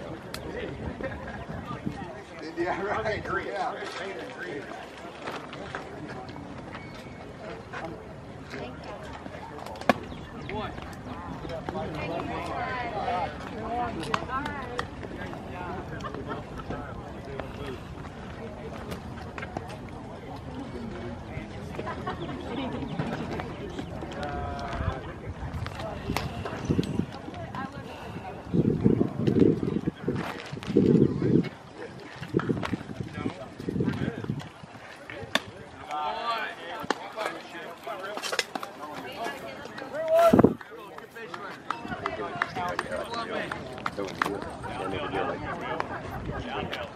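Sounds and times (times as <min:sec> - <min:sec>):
voices calling out: 0:33.4 - 0:46.9.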